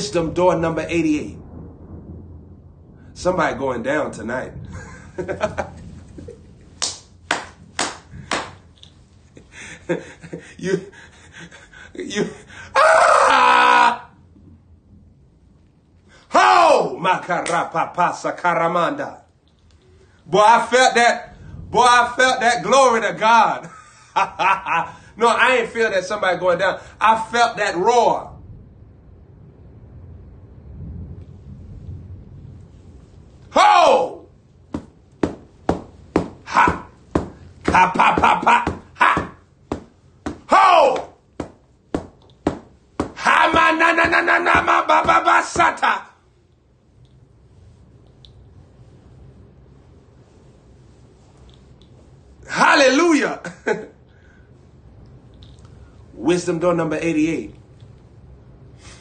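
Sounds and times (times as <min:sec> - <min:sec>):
man crying out: 0:09.9 - 0:14.2, 0:16.3 - 0:17.0, 0:33.5 - 0:34.3, 0:36.5 - 0:37.0, 0:37.7 - 0:39.4, 0:40.3 - 0:41.2, 0:43.2 - 0:46.2
man roaring: 0:12.7 - 0:14.1, 0:33.5 - 0:34.2, 0:40.5 - 0:41.1.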